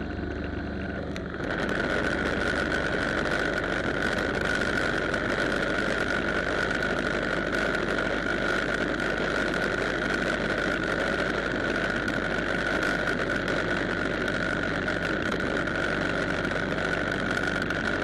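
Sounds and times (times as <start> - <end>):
high whine: 0.0 - 18.0
motorcycle engine: 0.0 - 18.0
wind noise: 0.0 - 18.0.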